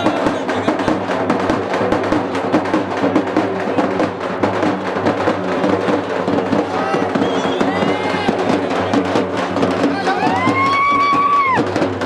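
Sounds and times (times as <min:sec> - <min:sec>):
fast dense drum beats: 0:00.0 - 0:12.0.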